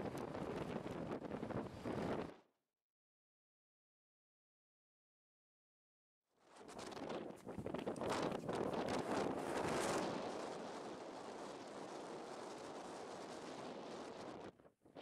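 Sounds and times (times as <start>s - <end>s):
wind buffeting microphone: 0.0s - 2.4s, 6.7s - 15.0s.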